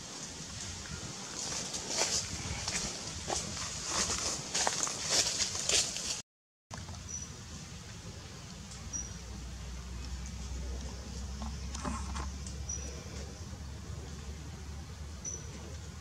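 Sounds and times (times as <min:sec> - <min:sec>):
faint outdoor background: 0:00.0 - 0:16.0.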